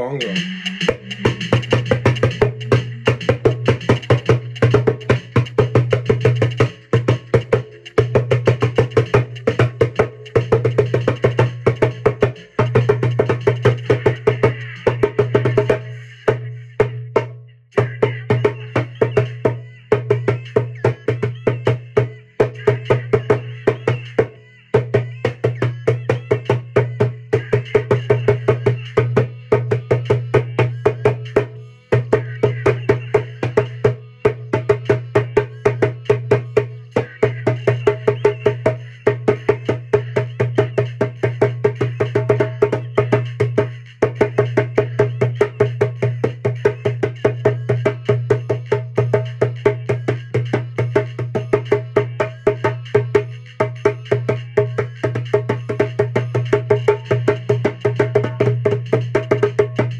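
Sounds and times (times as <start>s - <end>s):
djembe played with bare hands: 0.2s - 59.9s.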